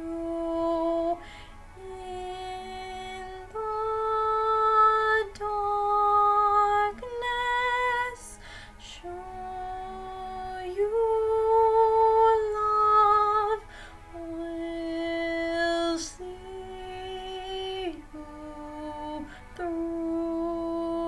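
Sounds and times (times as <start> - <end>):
woman singing a slow ballad: 0.0 - 21.0
singer breathing in: 8.4 - 8.8, 13.6 - 14.1.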